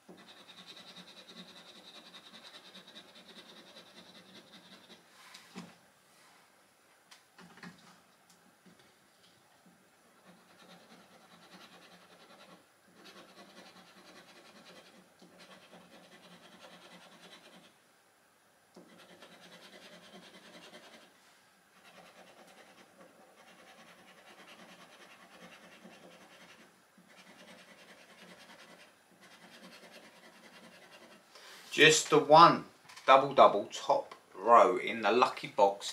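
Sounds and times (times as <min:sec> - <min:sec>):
coin scratching a scratchcard: 0:00.1 - 0:05.0, 0:10.2 - 0:17.7, 0:18.8 - 0:21.1, 0:21.8 - 0:31.2.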